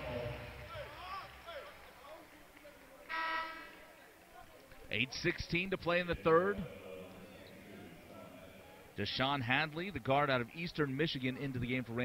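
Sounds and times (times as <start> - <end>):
crowd murmur: 0.0 - 4.9, 6.1 - 9.0
arena horn buzz: 3.1 - 3.9.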